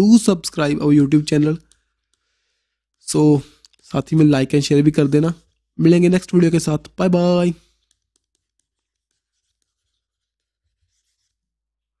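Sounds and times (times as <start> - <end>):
stylus tapping and scratching on tablet: 0.0 - 12.0.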